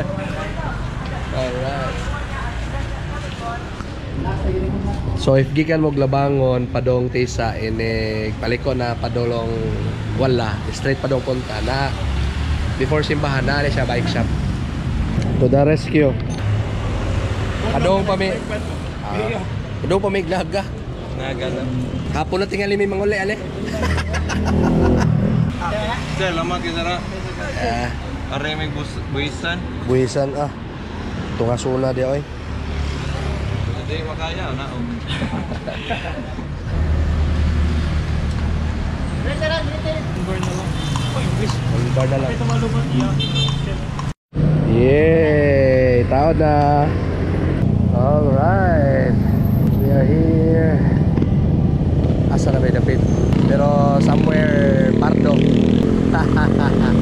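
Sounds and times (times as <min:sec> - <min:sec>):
vehicle passing: 0:16.4 - 0:57.0.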